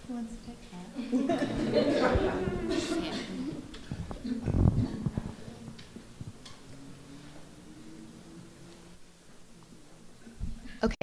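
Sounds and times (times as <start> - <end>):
low steady hum: 0.0 - 11.0
people laughing: 1.0 - 5.8.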